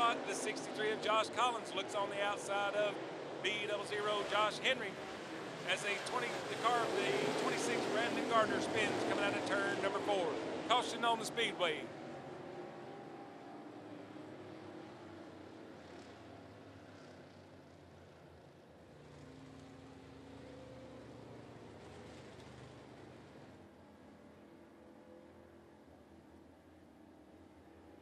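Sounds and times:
faint race car engines: 0.0s - 28.0s.

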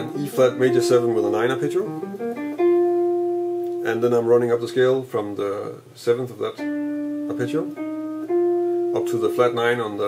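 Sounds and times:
electric jazz guitar arpeggio: 0.0s - 4.7s, 6.5s - 10.0s.

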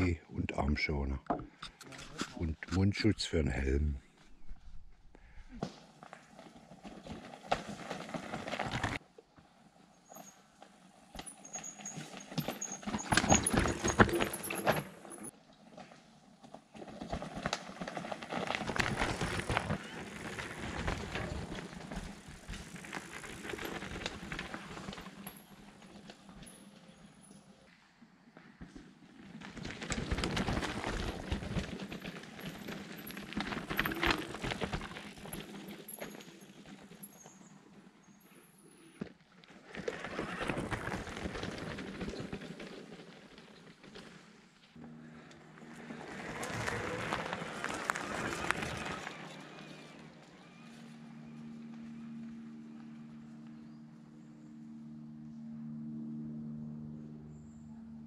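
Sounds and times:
bike tyres rolling over dirt: 5.2s - 27.7s, 28.4s - 53.8s.

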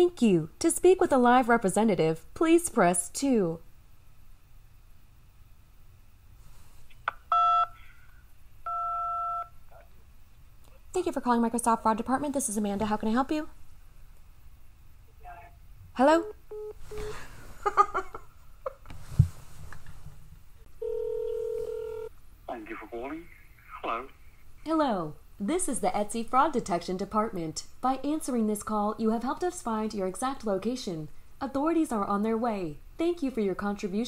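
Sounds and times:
keypad beeps over phone line: 7.3s - 7.8s
telephone ringback tone: 7.3s - 7.8s, 8.7s - 9.5s, 20.8s - 22.1s.

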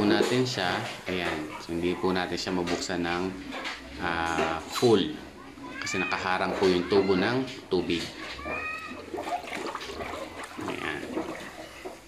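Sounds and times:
pig slurping water: 0.0s - 12.0s.

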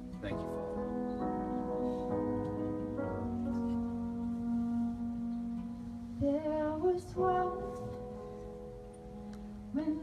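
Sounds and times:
sustained keyboard chords: 0.0s - 10.0s
woman singing: 4.0s - 8.4s, 9.7s - 10.0s.

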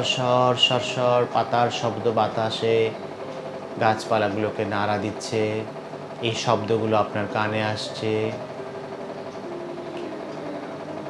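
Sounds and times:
soft droning background music: 0.0s - 11.0s.

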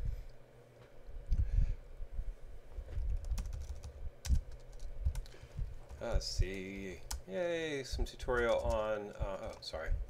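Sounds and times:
typing on computer keyboard: 3.0s - 7.2s, 8.2s - 9.7s.

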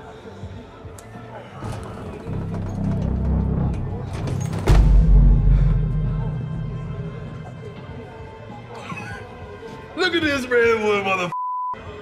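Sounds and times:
low rumbling film score drone: 2.2s - 8.8s
heavy booming hit: 2.3s - 8.8s.

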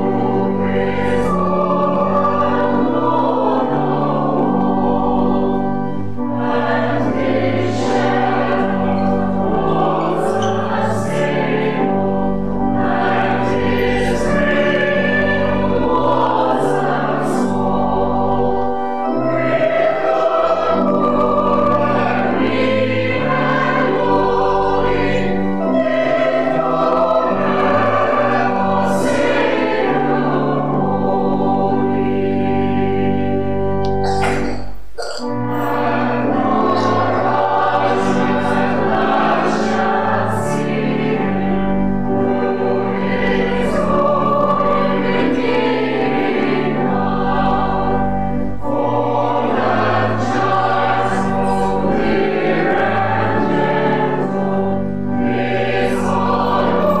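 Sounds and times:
congregation and choir singing: 0.0s - 57.0s
organ accompaniment: 0.0s - 57.0s.

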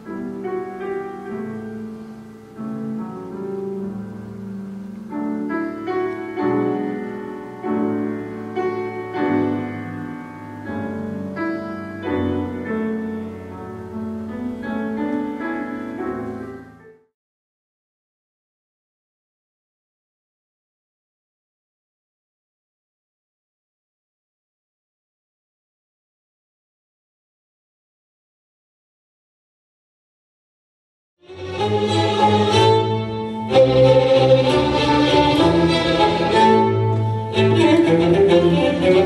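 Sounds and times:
classical piano music: 0.0s - 17.1s, 31.3s - 39.0s.

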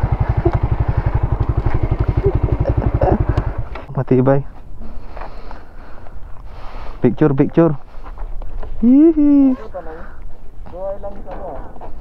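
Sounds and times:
motorcycle engine idling: 0.0s - 3.9s.

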